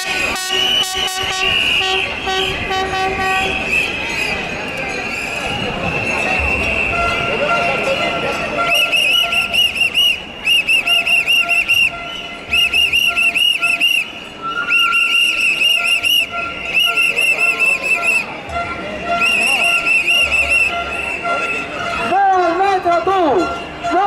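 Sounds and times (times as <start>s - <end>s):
shrill whistles blown rhythmically: 3.4s - 7.7s, 8.6s - 18.4s, 19.0s - 21.8s.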